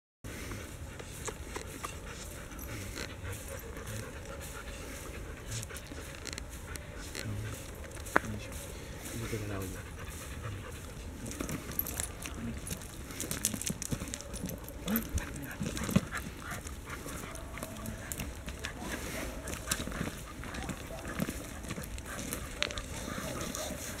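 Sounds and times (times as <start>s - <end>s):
dog panting: 0.3s - 24.0s
footsteps on gravel: 0.4s - 24.0s
small clicks and rustles: 0.9s - 8.4s, 10.2s - 24.0s.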